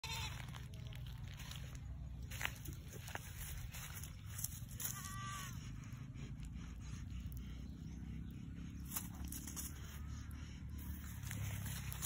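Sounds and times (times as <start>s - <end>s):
low steady rumble: 0.0s - 12.0s
goat bleating: 4.8s - 5.7s.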